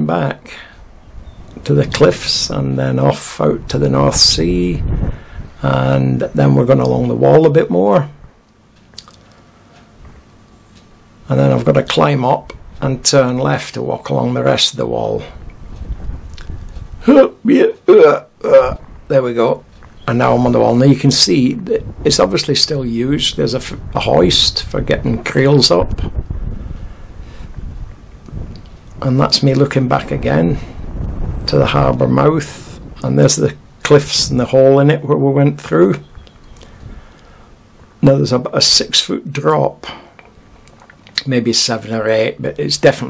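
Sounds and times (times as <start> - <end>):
wind buffeting microphone: 0.0 - 8.4, 11.3 - 17.4, 18.3 - 35.0, 35.7 - 38.0
faint hiss: 0.0 - 43.0.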